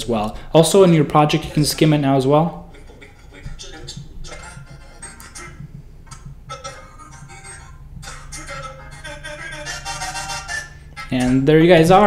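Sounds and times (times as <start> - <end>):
choppy song snippets: 0.0 - 12.0.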